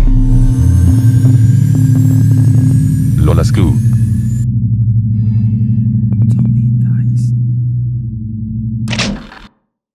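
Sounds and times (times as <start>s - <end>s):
low synthesizer bass drone: 0.0s - 9.0s.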